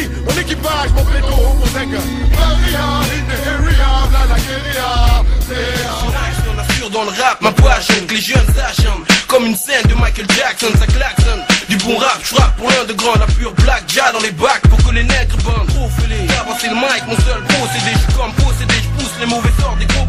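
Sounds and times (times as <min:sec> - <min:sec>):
deep bass: 0:00.0 - 0:09.1, 0:14.6 - 0:20.0
hip-hop drum beat: 0:00.0 - 0:20.0
person rapping: 0:00.0 - 0:20.0.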